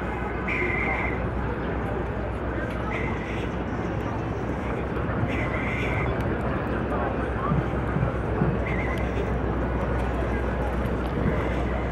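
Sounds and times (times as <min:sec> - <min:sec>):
passers-by talking: 0:00.0 - 0:11.9
traffic noise: 0:00.0 - 0:11.9.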